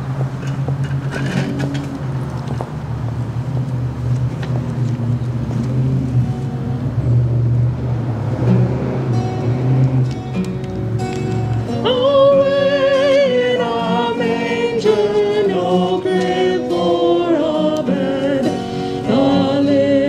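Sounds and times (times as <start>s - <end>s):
twelve-string acoustic guitar: 0.0s - 2.2s, 5.6s - 7.4s, 8.0s - 20.0s.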